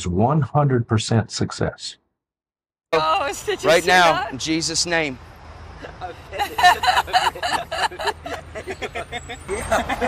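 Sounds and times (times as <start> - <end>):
people talking indistinctly: 3.0 - 8.4
street traffic rumble: 3.0 - 10.0.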